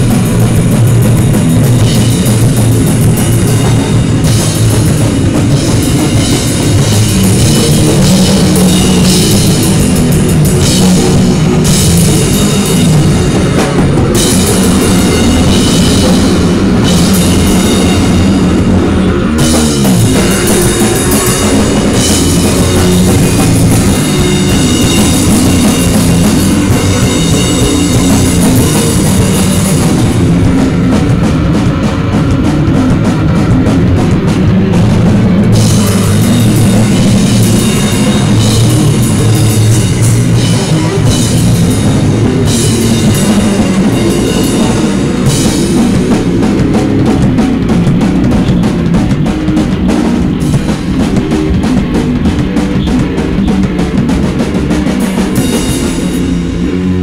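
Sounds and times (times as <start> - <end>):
drum kit with cymbals: 0.0 - 57.0
electric guitar: 0.0 - 57.0.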